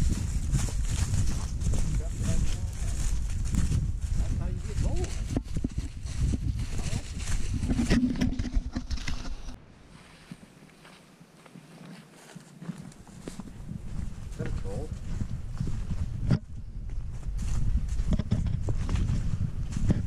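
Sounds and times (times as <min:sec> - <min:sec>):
low rumble on microphone: 0:00.0 - 0:09.6, 0:13.0 - 0:20.0
footsteps crunching through dry leaves: 0:00.0 - 0:16.2, 0:16.8 - 0:20.0.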